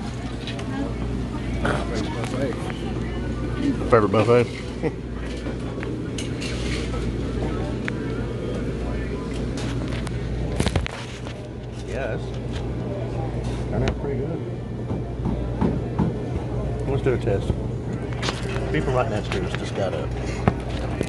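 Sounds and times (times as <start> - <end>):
diners chattering: 0.0 - 21.0
steady low hum: 0.0 - 21.0.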